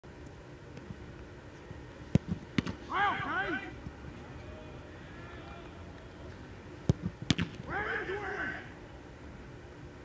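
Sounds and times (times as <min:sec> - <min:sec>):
soccer ball thuds: 0:02.1 - 0:02.9, 0:06.8 - 0:07.6
person shouting: 0:02.9 - 0:03.7, 0:07.7 - 0:08.7.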